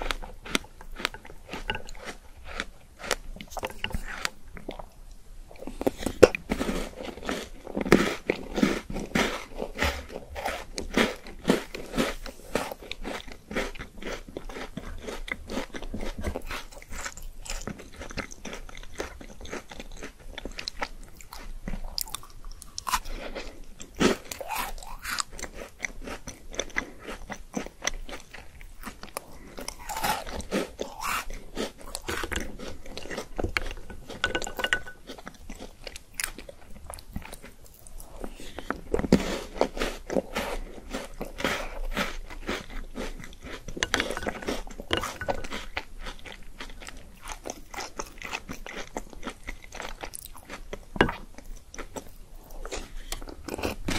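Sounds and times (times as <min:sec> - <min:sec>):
person chewing crunchy food: 0:00.0 - 0:53.9
wet chewing clicks: 0:12.5 - 0:53.9.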